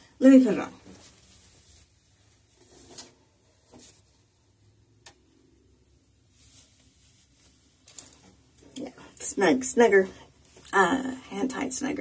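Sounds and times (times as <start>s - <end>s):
wig rustling: 0.4s - 4.4s, 6.2s - 9.2s.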